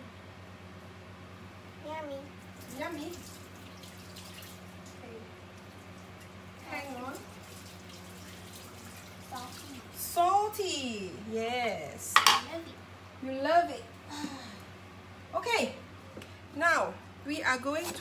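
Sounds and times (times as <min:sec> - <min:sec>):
low electrical hum: 0:00.0 - 0:18.0
child's voice: 0:01.8 - 0:03.0, 0:09.3 - 0:10.0, 0:12.4 - 0:12.8.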